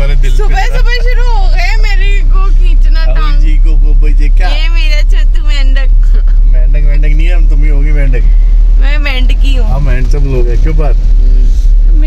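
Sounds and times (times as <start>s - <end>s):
person talking: 0.0s - 7.6s
car cabin road rumble: 0.0s - 12.0s.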